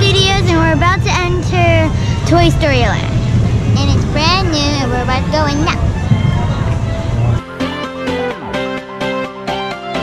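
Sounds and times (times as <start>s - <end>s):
girl talking: 0.0s - 3.2s, 3.8s - 5.9s
low background rumble: 0.0s - 7.6s.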